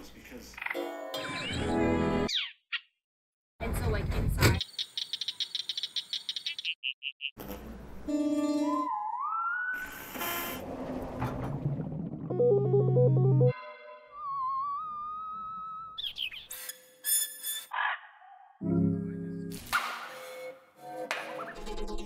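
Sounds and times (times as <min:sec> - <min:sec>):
gliding pitched tone: 0:12.1 - 0:16.0
low reedy chord with melody: 0:12.3 - 0:14.2.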